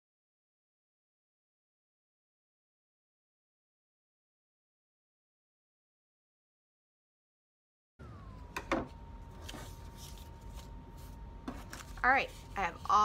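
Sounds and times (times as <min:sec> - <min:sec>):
faint steady whine: 0:08.0 - 0:13.0.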